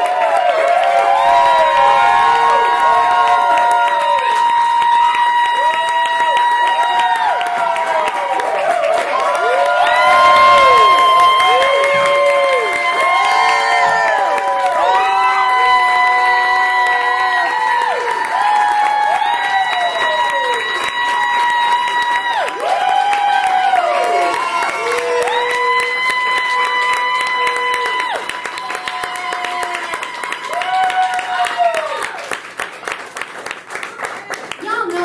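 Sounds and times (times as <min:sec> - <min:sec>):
audience applauding: 0:00.0 - 0:35.0.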